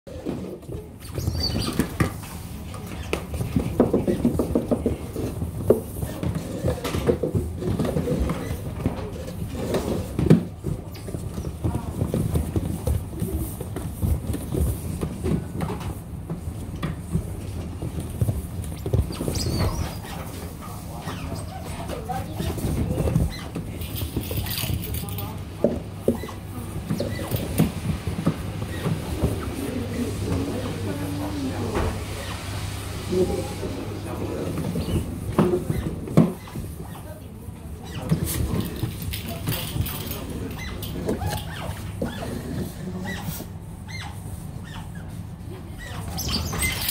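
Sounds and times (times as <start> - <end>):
otters scrabbling and pattering: 0.1 - 31.6, 33.7 - 46.9
high squeak: 19.2 - 20.2.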